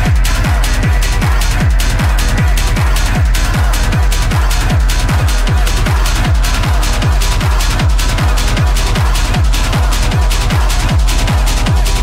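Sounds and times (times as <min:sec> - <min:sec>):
fast driving kick drum: 0:00.0 - 0:12.0
hard techno over sound system: 0:00.0 - 0:12.0.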